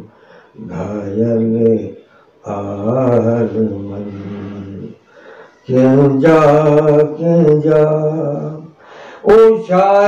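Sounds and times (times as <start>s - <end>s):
man chanting a sung melody: 0.0s - 5.0s, 5.6s - 10.0s.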